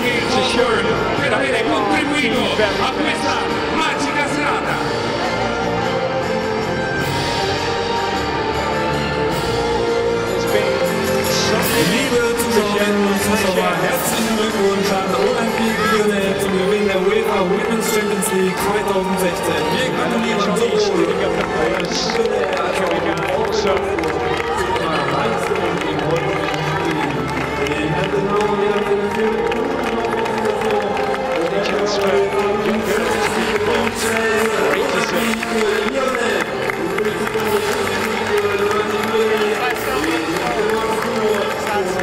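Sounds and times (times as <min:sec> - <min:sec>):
music over public address: 0:00.0 - 0:42.0
crowd cheering: 0:10.5 - 0:42.0.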